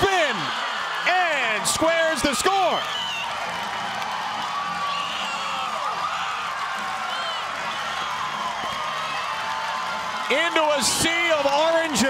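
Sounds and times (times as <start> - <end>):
stadium crowd cheering: 0.0 - 12.0
high whoops: 2.6 - 10.3.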